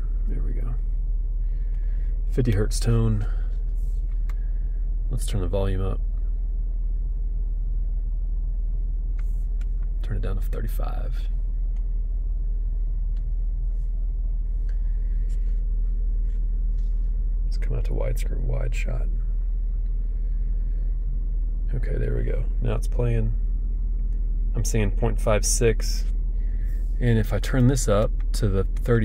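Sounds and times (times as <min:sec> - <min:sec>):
deep sine test tone hum: 0:00.0 - 0:29.0.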